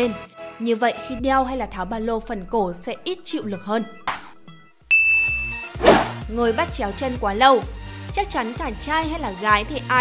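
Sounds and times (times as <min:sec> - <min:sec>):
low background music: 0:00.0 - 0:10.0
bright bell ding: 0:04.9 - 0:05.8
short rushing whoosh: 0:05.8 - 0:06.2.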